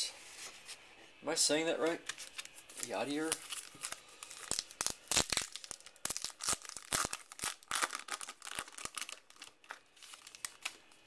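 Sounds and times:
paper wrapper tearing and crinkling: 2.1 - 11.0.

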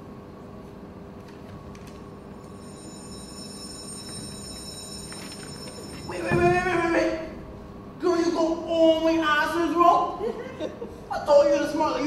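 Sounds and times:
steady hum and hiss: 0.0 - 12.0.

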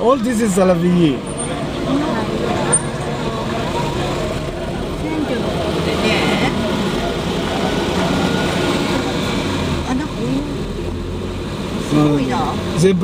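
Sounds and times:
faint voices: 0.0 - 11.0
car road and engine noise: 0.0 - 13.0.

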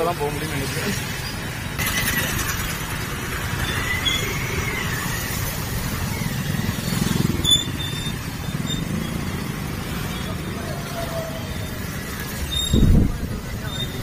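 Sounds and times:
scooter engine rumble: 0.0 - 14.0
wind: 0.0 - 14.0
faint wavering squeal: 3.6 - 6.8, 10.2 - 13.0.

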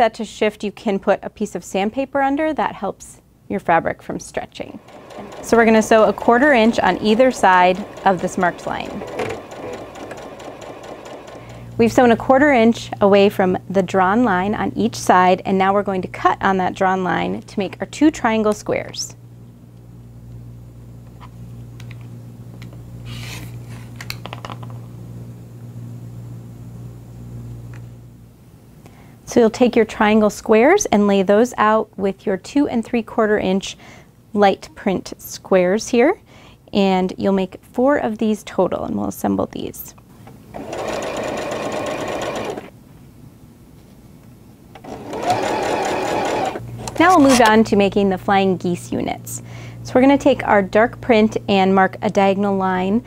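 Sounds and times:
steady low hum: 3.2 - 31.1, 39.9 - 53.0
electric sewing machine stitching: 4.7 - 12.2, 40.5 - 42.7, 44.8 - 47.5
rotary cutter slicing fabric: 4.8 - 11.6, 40.6 - 42.7, 44.8 - 47.5.

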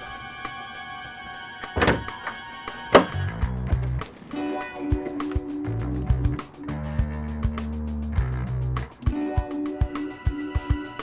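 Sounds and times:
music with ticking beat: 1.7 - 11.0
car door and hood latch thunks: 1.8 - 2.2, 3.0 - 3.2.

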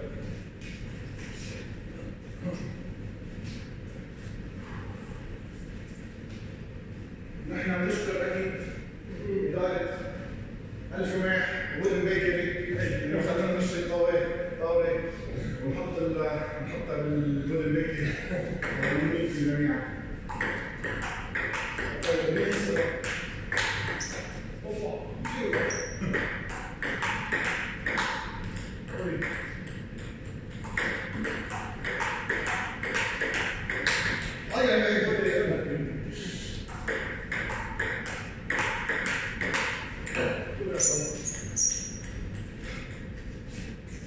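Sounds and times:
table tennis ball ticking: 20.3 - 24.4, 25.2 - 34.5, 36.7 - 40.4.

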